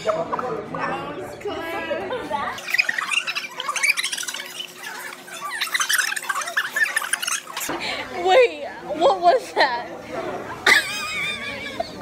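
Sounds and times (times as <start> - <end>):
high-pitched squeaky laughter: 2.6 - 7.7, 10.6 - 12.0.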